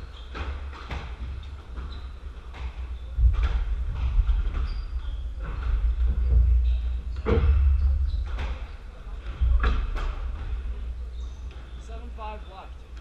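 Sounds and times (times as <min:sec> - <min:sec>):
shoes squeaking on wooden floor: 0:00.0 - 0:12.6.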